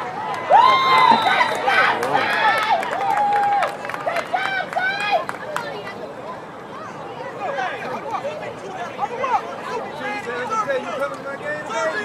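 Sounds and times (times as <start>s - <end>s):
spectators shouting: 0.0s - 5.3s.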